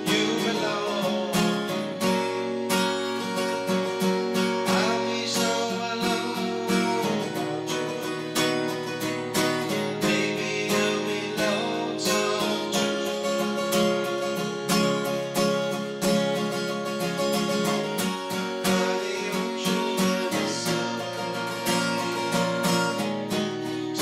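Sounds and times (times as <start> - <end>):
man singing: 0.0 - 2.5, 4.2 - 14.9, 17.2 - 24.0
acoustic guitar strumming: 0.0 - 24.0.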